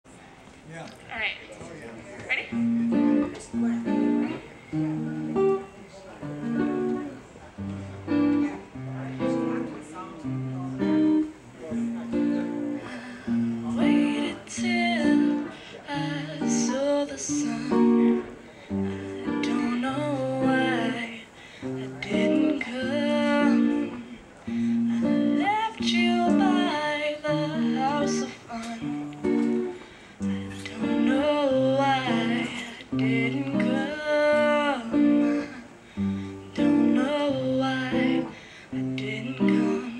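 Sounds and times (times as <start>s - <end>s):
acoustic guitar chords: 2.5s - 39.9s
person singing: 12.8s - 39.9s.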